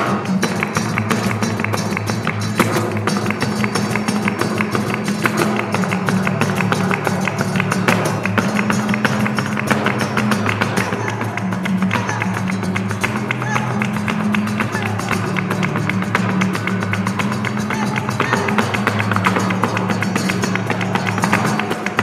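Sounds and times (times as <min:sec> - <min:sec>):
cajon drumming: 0:00.0 - 0:22.0
flamenco guitar: 0:00.0 - 0:22.0
handclaps: 0:00.0 - 0:22.0.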